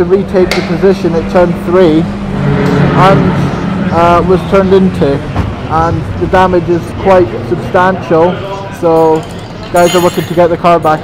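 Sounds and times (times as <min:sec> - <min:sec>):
race car engine revving: 0:00.0 - 0:08.3.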